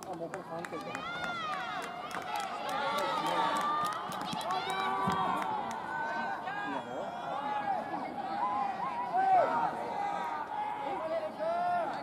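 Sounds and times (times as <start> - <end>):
voices shouting and calling out: 0.6 - 12.0.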